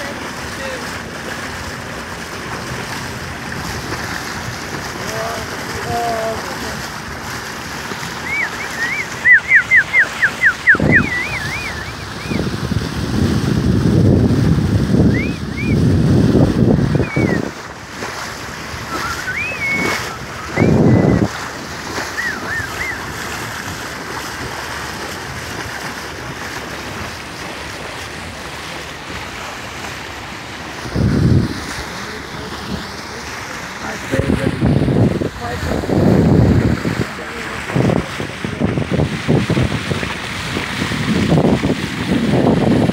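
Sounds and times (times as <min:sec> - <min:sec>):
sea and wind: 0:00.0 - 0:42.9
wind rushing on microphone: 0:08.0 - 0:25.9, 0:30.7 - 0:33.2, 0:33.8 - 0:42.9
rising and falling whistles: 0:08.2 - 0:12.4, 0:15.1 - 0:15.8, 0:17.0 - 0:17.4, 0:18.9 - 0:21.3, 0:22.2 - 0:23.0.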